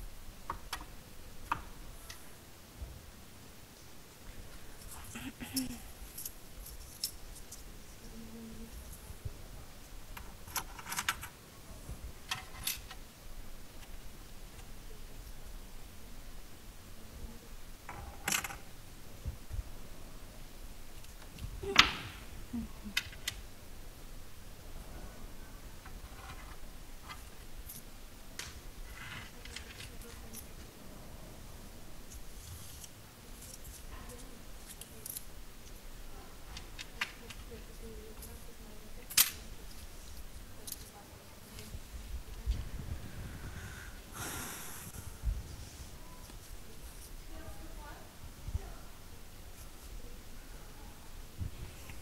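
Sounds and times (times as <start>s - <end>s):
low steady hum: 0.0s - 52.0s
small objects clicking and rustling: 4.8s - 7.7s, 32.1s - 35.8s.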